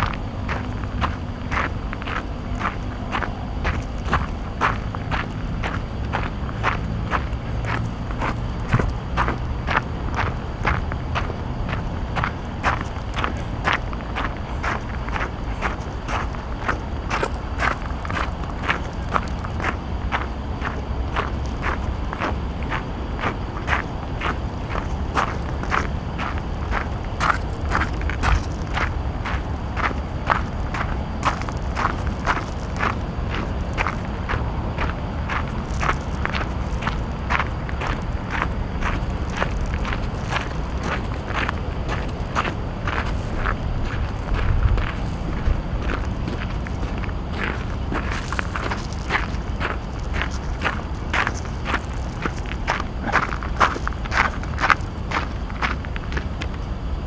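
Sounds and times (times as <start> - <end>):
footsteps walking: 0.0 - 56.7
steady low rumble: 0.0 - 57.0.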